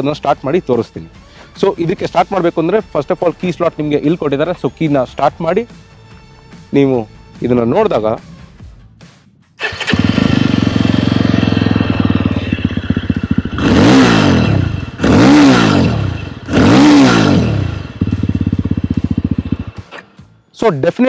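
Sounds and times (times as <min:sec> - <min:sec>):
motorcycle engine idling and revving: 0:07.1 - 0:20.4.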